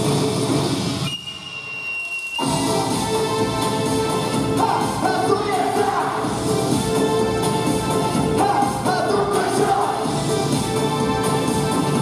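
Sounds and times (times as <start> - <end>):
dance music over sound system: 0.0 - 1.8, 2.4 - 12.0.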